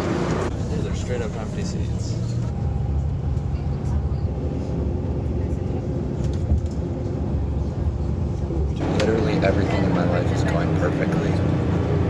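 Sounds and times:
bus engine and tyres rumbling: 0.0 - 12.0.

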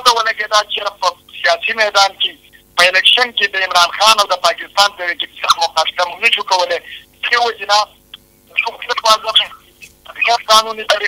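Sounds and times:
man talking over phone line: 2.8 - 7.8, 8.6 - 11.0.

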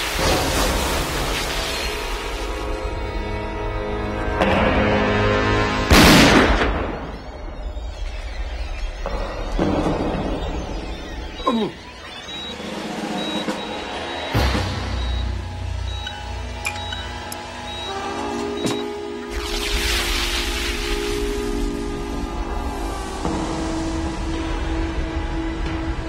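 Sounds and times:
film score chords: 9.6 - 26.0.

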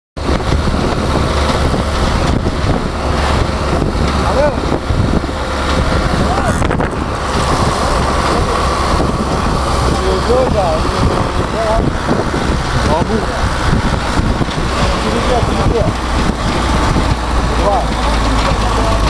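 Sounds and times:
low rumble: 0.2 - 19.0
wind noise on microphone: 0.2 - 19.0.

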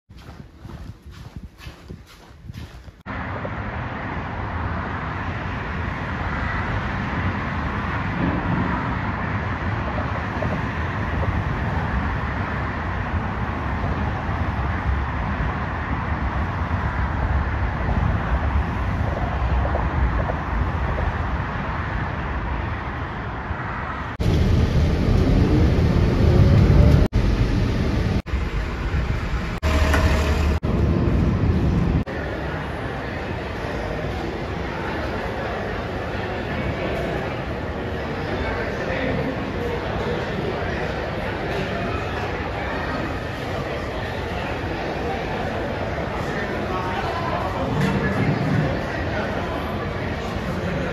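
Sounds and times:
road traffic noise: 0.1 - 50.9
heavy vehicle rumble: 2.5 - 50.9.

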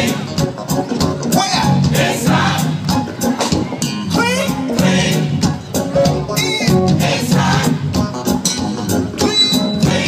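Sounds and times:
drums keeping the beat: 0.0 - 10.0
gospel choir and band music: 0.0 - 10.0.

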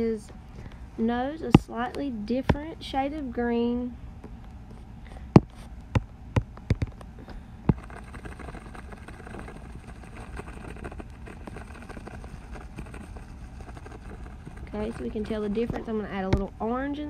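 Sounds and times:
low background rumble: 0.0 - 17.0.

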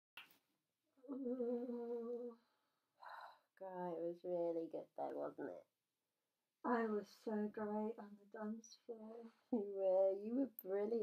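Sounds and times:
person humming: 1.1 - 2.4.

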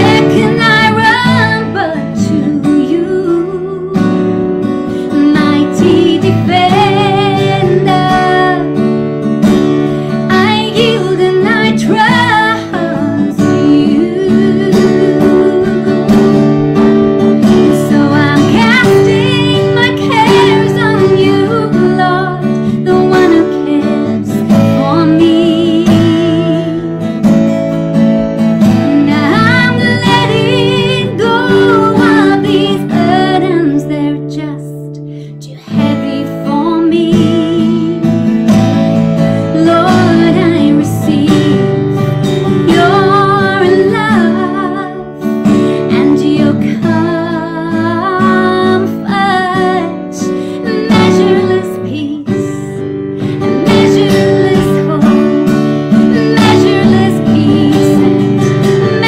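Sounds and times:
woman singing with vibrato: 0.0 - 4.4, 5.0 - 8.8, 10.3 - 16.3, 17.4 - 27.1, 28.6 - 38.2, 39.4 - 59.0
strummed acoustic guitar: 0.0 - 59.0.

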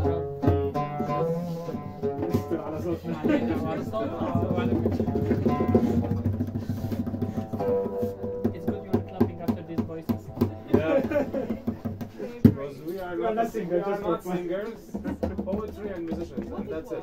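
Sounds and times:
oud plucked notes: 0.0 - 12.1.

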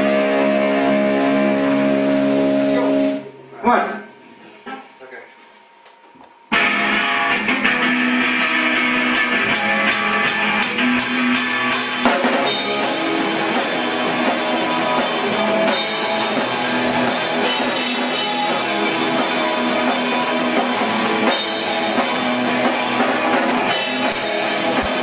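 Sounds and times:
rock band playing live: 0.0 - 3.4, 6.5 - 25.0
drum and cymbal hits: 6.5 - 25.0.

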